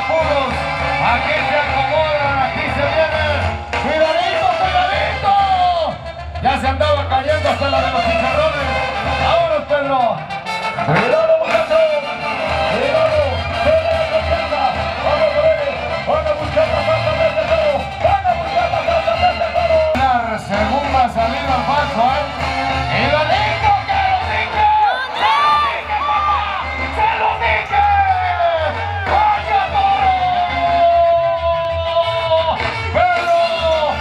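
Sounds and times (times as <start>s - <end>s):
band music over loudspeakers: 0.0s - 34.0s.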